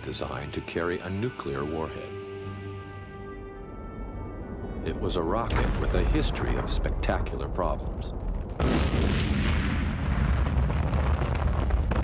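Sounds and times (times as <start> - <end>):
deep rumble of rocket explosion: 4.8 - 12.0.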